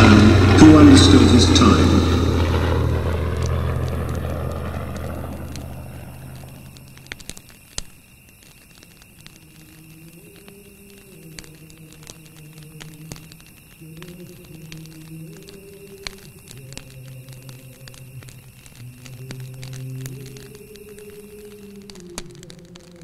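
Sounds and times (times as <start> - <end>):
person speaking: 0.0 - 2.4
low steady drone: 0.0 - 7.3
faint clicks: 3.4 - 23.0.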